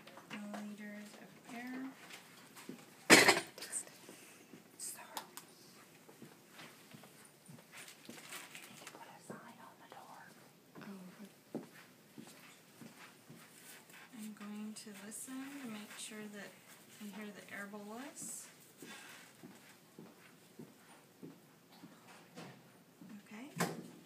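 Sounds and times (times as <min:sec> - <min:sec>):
faint rustles and clicks: 0:00.0 - 0:21.1.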